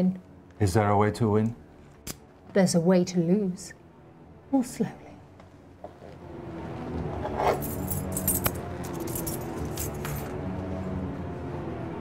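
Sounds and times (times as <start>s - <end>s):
background music sustained tones: 0.0s - 12.0s
metal keys jangling: 7.4s - 10.3s.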